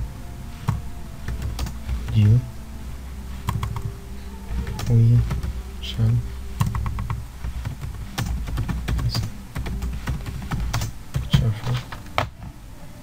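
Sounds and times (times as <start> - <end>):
typing on computer keyboard: 6.6 - 12.4.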